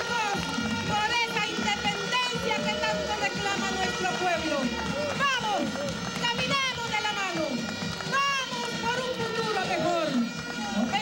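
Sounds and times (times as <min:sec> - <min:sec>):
rally crowd: 0:00.0 - 0:11.0
voices shouting through microphone: 0:00.0 - 0:11.0.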